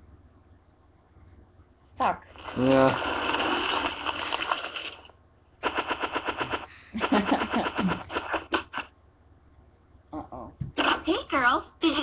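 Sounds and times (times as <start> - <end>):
dense rush of noise: 2.3 - 8.9
rapid sharp clatter: 2.4 - 8.9
person laughing: 6.4 - 8.8.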